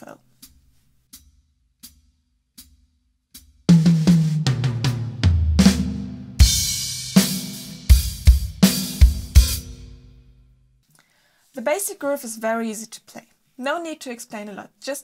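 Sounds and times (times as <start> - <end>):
tom drum fill: 3.7 - 10.1.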